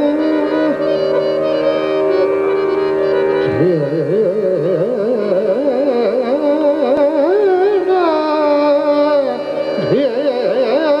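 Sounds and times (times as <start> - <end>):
man singing ornamented line: 0.0 - 2.4, 3.1 - 11.0
harmonium tones: 0.0 - 11.0.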